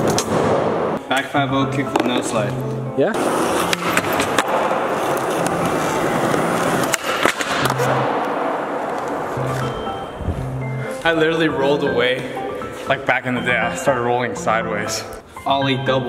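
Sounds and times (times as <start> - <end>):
skateboard wheels rolling on concrete: 0.0 - 13.0.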